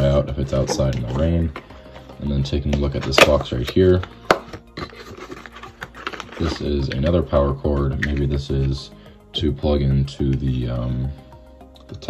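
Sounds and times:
contents scraping and ticking: 0.6s - 8.8s.

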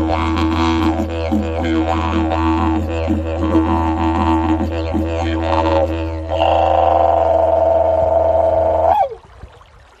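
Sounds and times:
didgeridoo drone: 0.0s - 9.2s.

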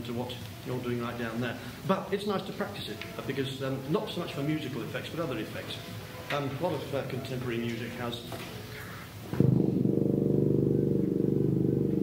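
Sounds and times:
tuba low rattling note: 9.3s - 12.0s.

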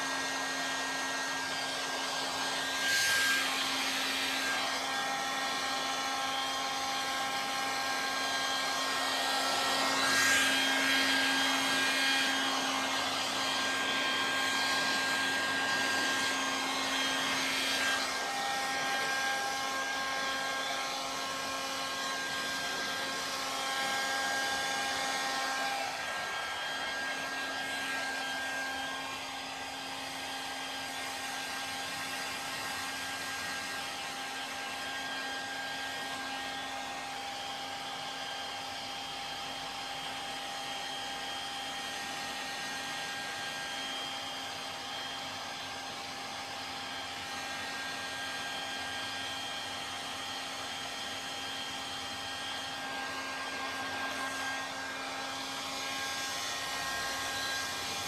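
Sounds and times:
hair dryer blowing: 0.0s - 58.0s.

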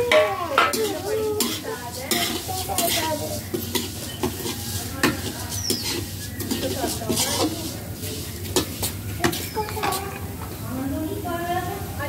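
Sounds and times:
spatula clinking on pan: 0.0s - 10.2s
spatula scraping metal pan: 0.0s - 10.3s
oil sizzling: 0.0s - 12.0s.

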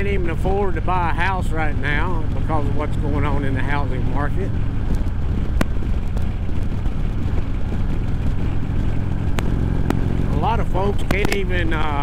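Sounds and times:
motorcycle engine cruising: 0.0s - 12.0s
wind rush on microphone: 0.0s - 12.0s.

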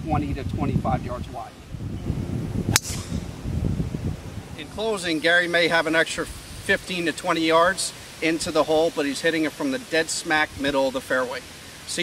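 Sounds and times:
wind on microphone: 0.0s - 7.0s
golf club striking ball: 2.6s - 4.4s.

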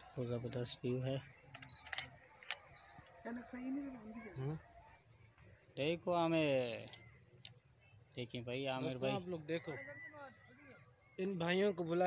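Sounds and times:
sharp clicks: 1.4s - 3.2s.

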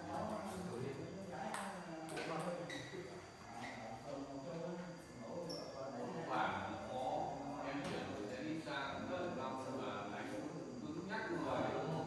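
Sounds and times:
voices talking in a hall: 0.0s - 12.0s.

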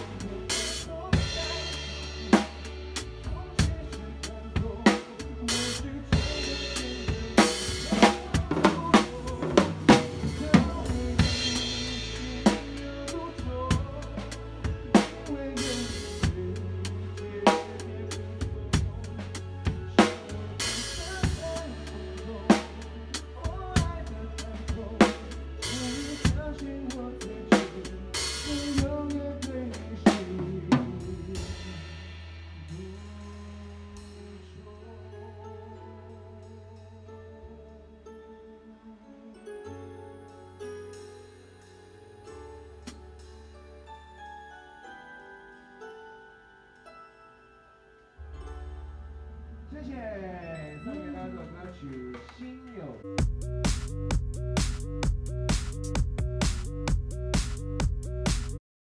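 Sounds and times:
drum kit playing a groove: 0.0s - 34.4s, 42.8s - 43.5s, 53.1s - 58.6s
band playing: 0.0s - 35.0s, 48.2s - 58.6s.

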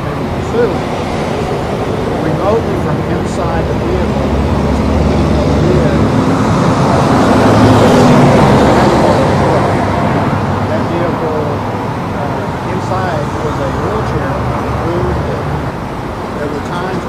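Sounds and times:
low engine hum: 0.0s - 17.0s
vehicle passing: 0.0s - 17.0s.

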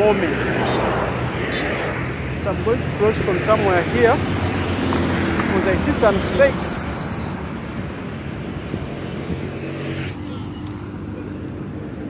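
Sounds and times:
vehicle engines passing: 0.0s - 12.0s.

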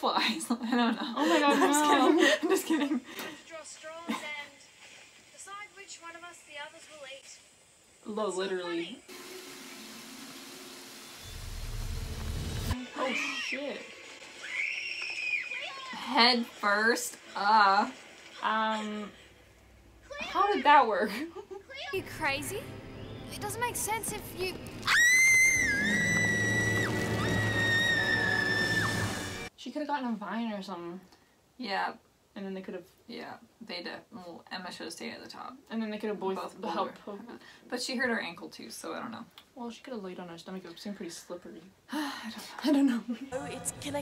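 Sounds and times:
steady hiss: 2.6s - 12.8s
girls screaming: 14.4s - 16.0s, 24.8s - 29.5s.

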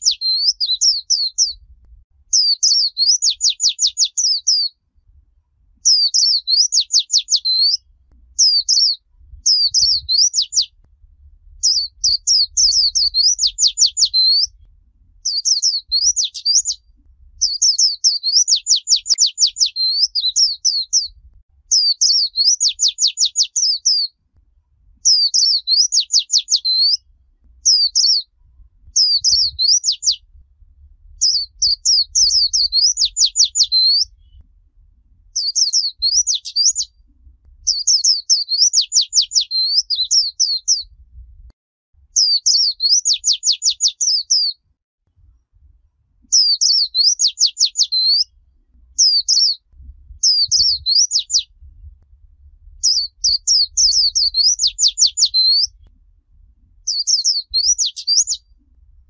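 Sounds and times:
white-eye bird singing: 0.0s - 1.7s, 2.3s - 4.8s, 5.8s - 10.8s, 11.6s - 24.2s, 25.0s - 30.4s, 31.2s - 34.5s, 35.4s - 40.9s, 42.2s - 44.6s, 46.3s - 51.6s, 52.8s - 55.9s, 56.8s - 58.7s.

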